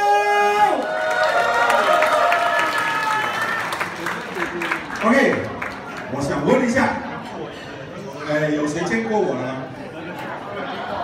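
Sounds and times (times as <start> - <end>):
audience clapping: 0.8 - 6.1.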